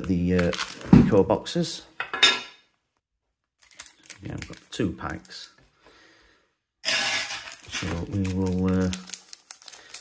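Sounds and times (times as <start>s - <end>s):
foil wrapper crinkling: 0.0s - 0.9s, 3.6s - 5.5s, 6.9s - 10.0s.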